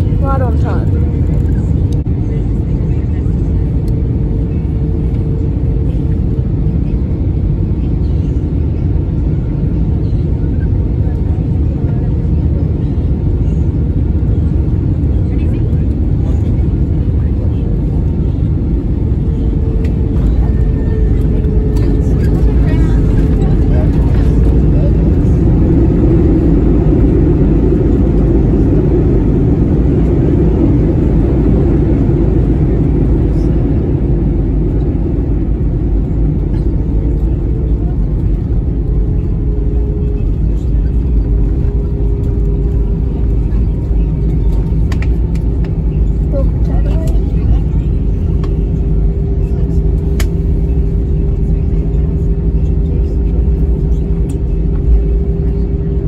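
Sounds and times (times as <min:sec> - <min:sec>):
airplane cabin rumble: 0:00.0 - 0:56.0.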